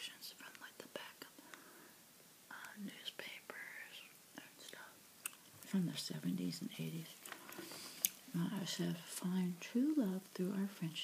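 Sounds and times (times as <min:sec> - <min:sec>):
close whispering: 0:00.0 - 0:01.5, 0:02.5 - 0:05.0.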